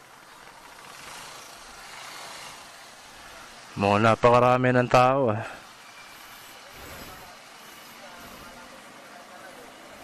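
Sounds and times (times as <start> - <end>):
distant traffic hiss: 0.0 - 10.0.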